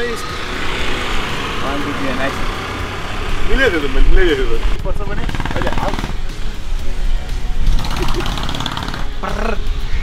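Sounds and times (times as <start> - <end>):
background music: 0.0 - 10.0
person laughing: 7.8 - 8.4, 9.2 - 9.7.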